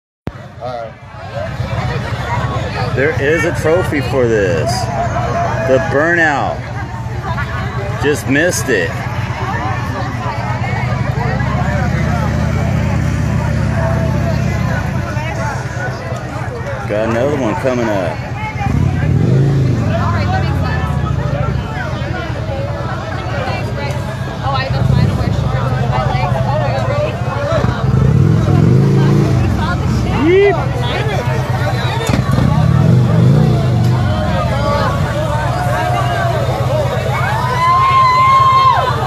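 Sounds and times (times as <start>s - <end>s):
crowd chatter: 0.3s - 39.0s
motorcycle engine revving: 9.0s - 23.0s, 23.6s - 38.0s.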